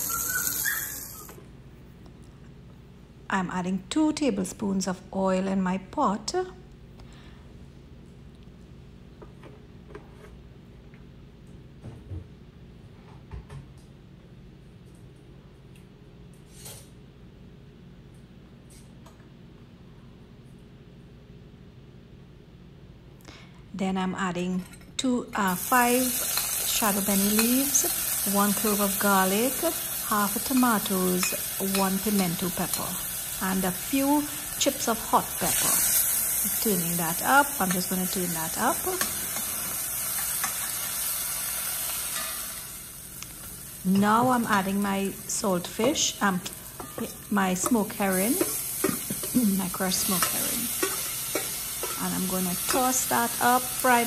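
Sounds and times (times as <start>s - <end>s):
food sizzling in hot oil: 0.0s - 1.3s, 25.5s - 54.0s
gas burner humming: 0.0s - 1.5s, 25.4s - 54.0s.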